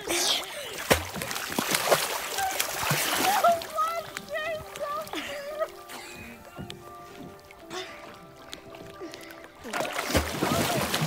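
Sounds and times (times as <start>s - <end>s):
water splashing against dock: 0.0s - 11.0s.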